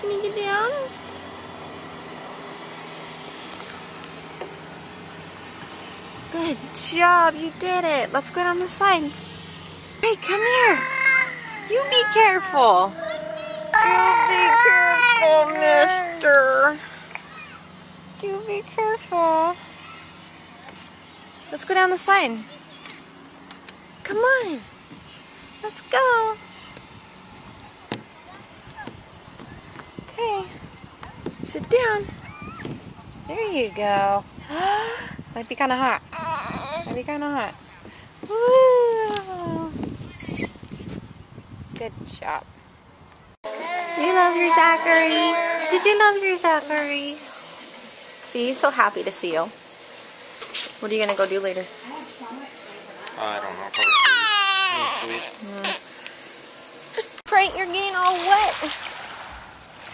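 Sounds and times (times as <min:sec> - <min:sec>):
low background hum: 0:00.0 - 0:59.9.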